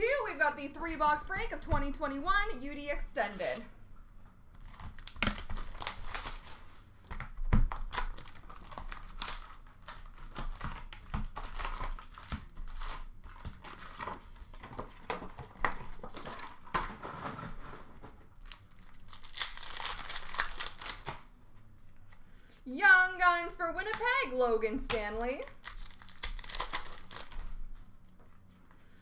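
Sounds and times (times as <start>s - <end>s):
plastic wrappers tearing and crinkling: 4.6s - 16.7s, 18.4s - 21.3s, 25.4s - 27.9s.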